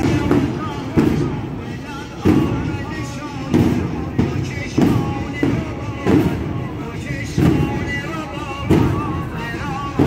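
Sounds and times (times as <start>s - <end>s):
mourning chant: 0.0s - 10.0s.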